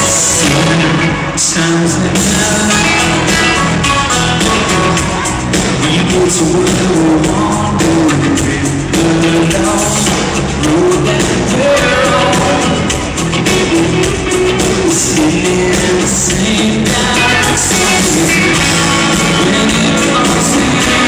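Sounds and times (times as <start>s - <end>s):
live country-rock band: 0.0s - 21.0s
man singing: 0.0s - 21.0s.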